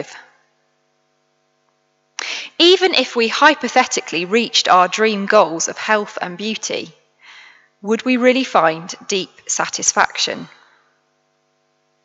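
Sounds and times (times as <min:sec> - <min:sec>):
faint electrical hum: 0:00.0 - 0:12.0
person speaking: 0:02.2 - 0:06.9, 0:07.8 - 0:10.5.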